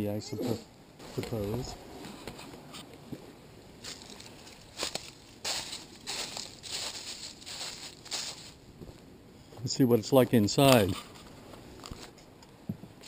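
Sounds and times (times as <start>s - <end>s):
footsteps on gravel and leaves: 3.8s - 9.0s.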